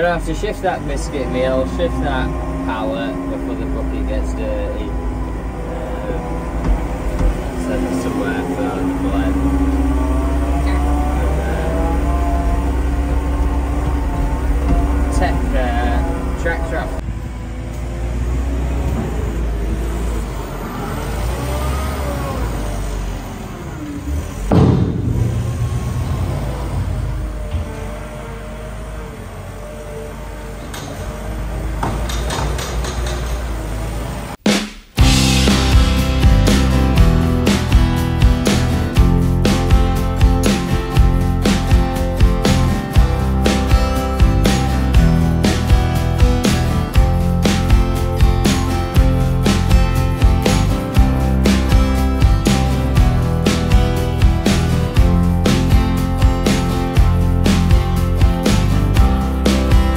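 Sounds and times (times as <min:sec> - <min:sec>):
diesel engine running: 0:00.0 - 0:34.4, 0:35.0 - 0:59.9
loud knock: 0:24.5 - 0:27.9.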